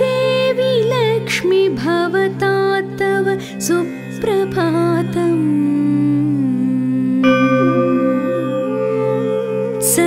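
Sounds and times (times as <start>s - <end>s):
steady drone: 7.2s - 10.0s.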